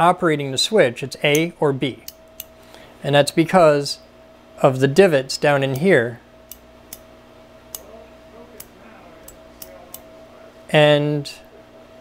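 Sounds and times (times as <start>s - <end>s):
rotary switch clicks: 1.3s - 2.5s, 6.5s - 7.1s, 7.7s - 7.9s.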